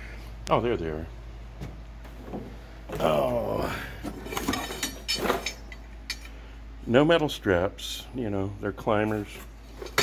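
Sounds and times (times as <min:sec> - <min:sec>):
metal climbers clanking and rattling: 0:04.0 - 0:06.4.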